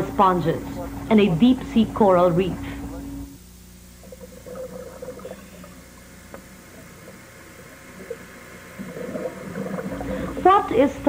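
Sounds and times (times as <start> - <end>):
background hiss: 0.0 - 11.0
underwater bubbling and gurgling: 3.9 - 11.0.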